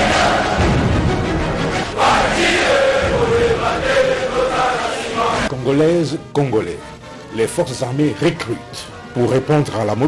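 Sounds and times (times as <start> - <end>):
men chanting in unison: 2.0 - 5.5.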